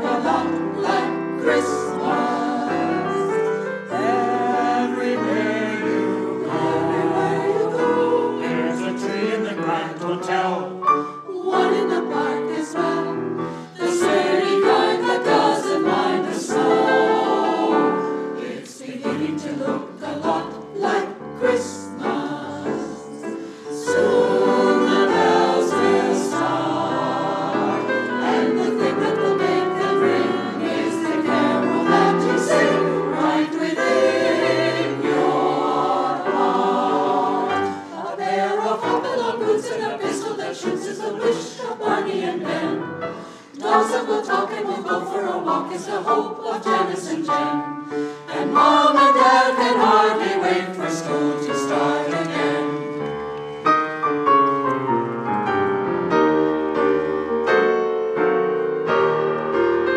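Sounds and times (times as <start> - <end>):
mixed choir singing: 0.0 - 53.3.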